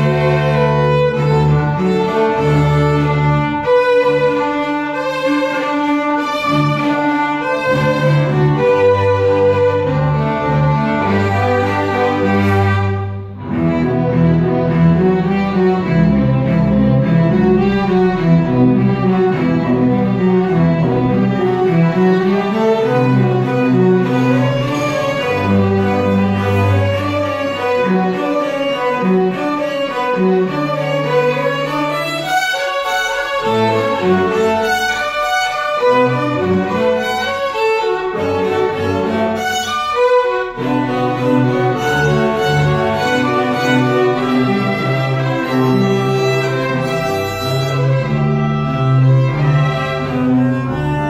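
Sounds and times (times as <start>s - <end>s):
double bass line: 0.0s - 51.0s
violins bowing: 0.0s - 51.0s.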